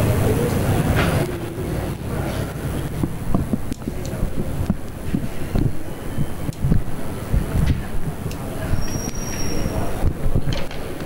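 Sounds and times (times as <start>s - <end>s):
microphone handling rumble and bumps: 2.1s - 11.0s.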